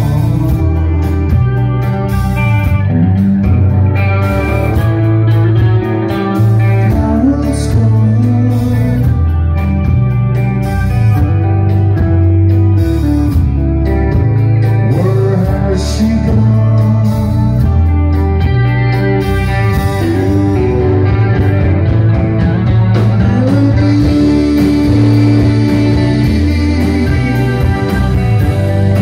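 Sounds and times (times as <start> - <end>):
bass guitar: 0.0 - 29.0
drums: 0.0 - 29.0
electric guitars: 0.0 - 29.0
keyboards: 0.0 - 29.0.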